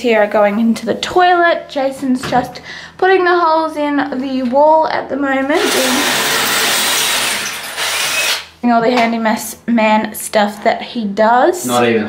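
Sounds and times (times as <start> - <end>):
power drill boring into wall: 5.6 - 8.5.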